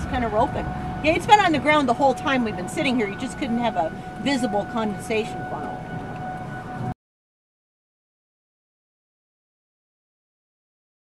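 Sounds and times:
steady high-pitched tone: 0:00.0 - 0:07.0
wind noise and rumble: 0:00.0 - 0:07.0.

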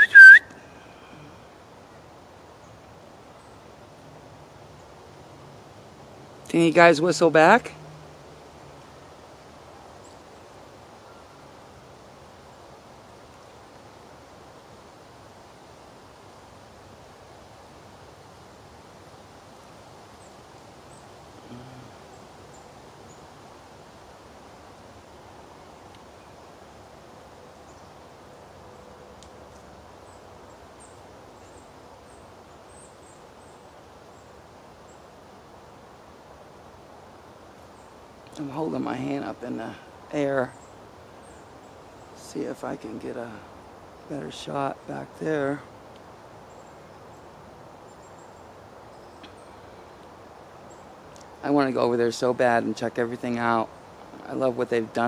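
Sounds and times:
faint high chirps: 0:00.0 - 0:01.3
steady background hiss: 0:00.0 - 0:55.0.

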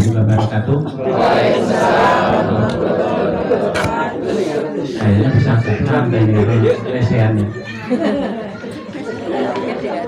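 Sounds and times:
murmur of chatter: 0:00.0 - 0:10.0.

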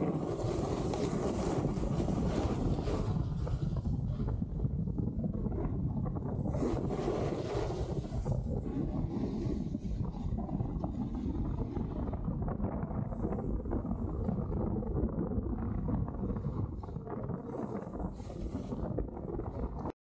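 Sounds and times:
snowboard edge scraping snow: 0:00.0 - 0:04.4, 0:06.3 - 0:11.8, 0:17.4 - 0:19.7
wind buffeting microphone: 0:00.0 - 0:20.0.

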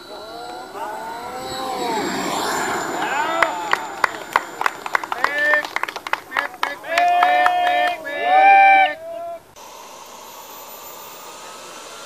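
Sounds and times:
rushing air noise: 0:00.0 - 0:06.9, 0:09.5 - 0:12.0
model jet whine fly-past: 0:00.0 - 0:07.0, 0:09.5 - 0:12.0
brief voices: 0:00.0 - 0:09.6.

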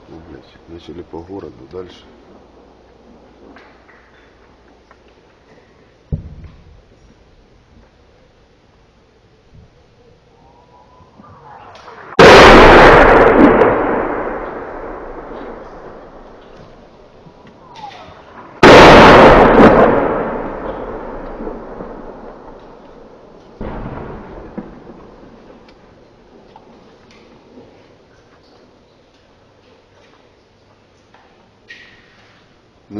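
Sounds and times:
artillery shells exploding: 0:11.6 - 0:26.8.

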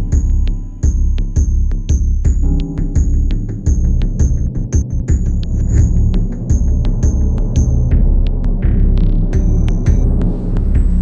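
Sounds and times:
pulsing low electronic throb: 0:00.0 - 0:11.0.

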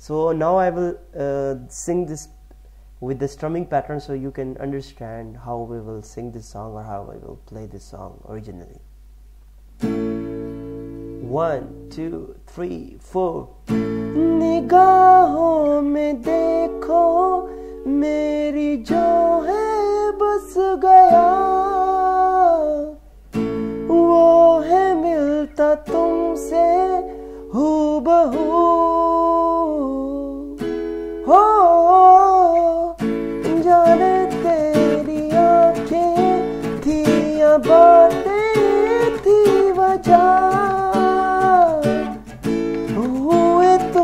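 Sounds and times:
man singing: 0:00.0 - 0:02.3, 0:03.0 - 0:08.8, 0:11.2 - 0:23.0, 0:23.8 - 0:30.6, 0:31.2 - 0:44.0
acoustic guitar strumming: 0:09.8 - 0:44.0.

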